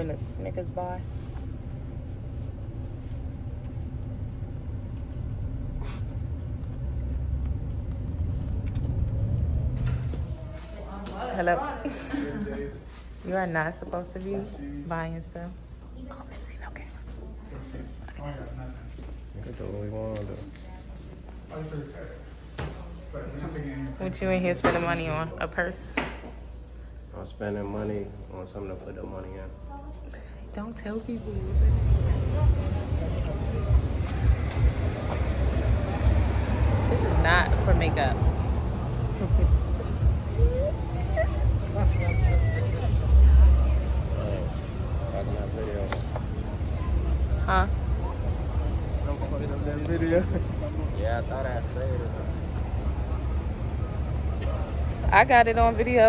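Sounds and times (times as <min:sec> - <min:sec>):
low street rumble: 0:00.0 - 0:56.0
steady low hum: 0:00.0 - 0:56.0
whispered voices: 0:09.7 - 0:24.2, 0:28.6 - 0:56.0.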